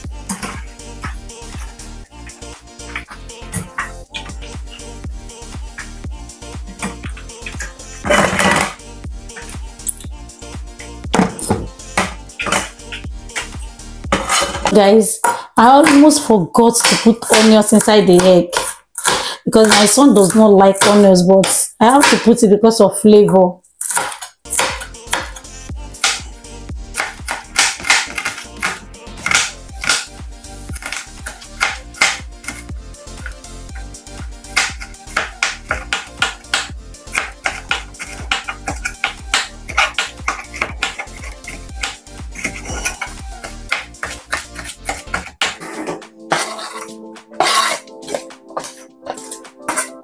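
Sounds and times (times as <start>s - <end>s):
background music: 0.0s - 50.0s
knife chopping on cutting board: 11.1s - 13.5s, 14.1s - 16.2s, 16.8s - 22.3s, 23.8s - 25.4s, 26.0s - 26.3s, 27.0s - 30.1s, 30.7s - 33.9s, 34.5s - 50.0s.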